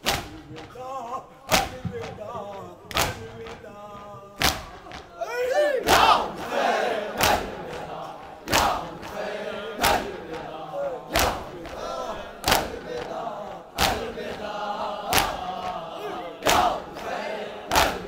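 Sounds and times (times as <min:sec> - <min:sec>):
hands striking chests: 0:00.0 - 0:00.8, 0:01.5 - 0:05.1, 0:09.8 - 0:18.0
men chanting: 0:00.0 - 0:18.0.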